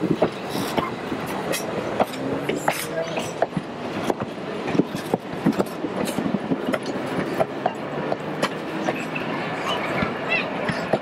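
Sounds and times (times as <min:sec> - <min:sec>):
train coaches rumbling: 0:00.0 - 0:11.0
wheels clicking over rail joints: 0:00.0 - 0:11.0.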